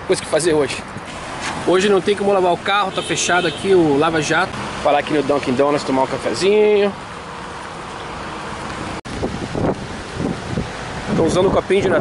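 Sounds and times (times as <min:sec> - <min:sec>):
wind buffeting microphone: 0:08.7 - 0:12.0.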